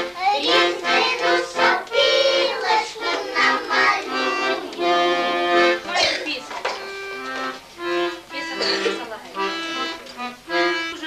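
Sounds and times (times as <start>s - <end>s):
children singing in chorus: 0.0s - 6.1s
accordion: 0.0s - 11.0s.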